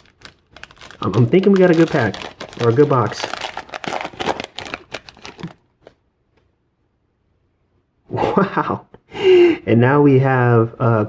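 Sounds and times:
foil wrapper crinkling: 0.0 - 6.0.

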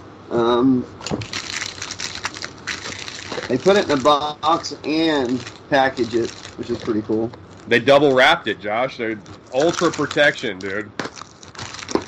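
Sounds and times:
plastic packaging crackling: 1.0 - 7.7, 9.2 - 12.0.

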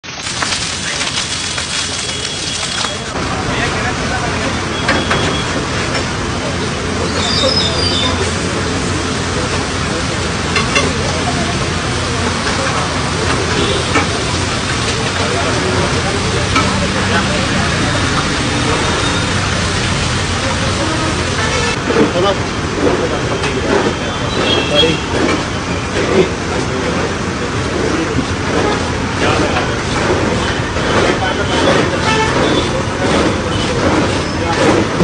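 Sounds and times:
water sizzling on hot griddle: 0.0 - 21.8.

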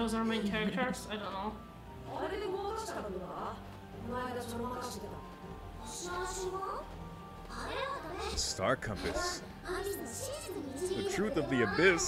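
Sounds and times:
background music: 0.0 - 12.0
girl speaking high-pitched: 9.2 - 12.0.

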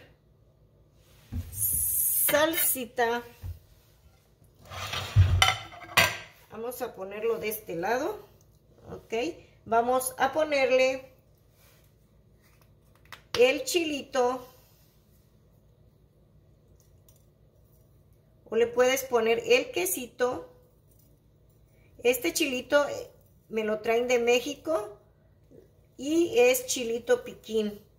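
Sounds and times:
plate scraping on countertop: 4.0 - 6.4
plate thump: 5.0 - 6.3.

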